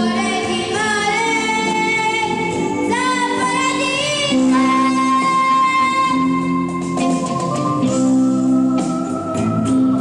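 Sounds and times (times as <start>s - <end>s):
boy singing pop ballad: 0.0s - 10.0s
live band accompaniment: 0.0s - 10.0s.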